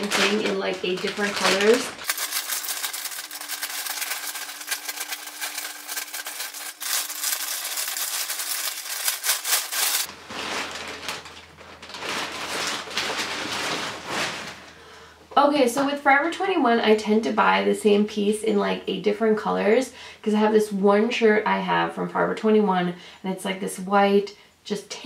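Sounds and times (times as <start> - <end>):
plastic bag crinkling and tearing: 0.0 - 14.8.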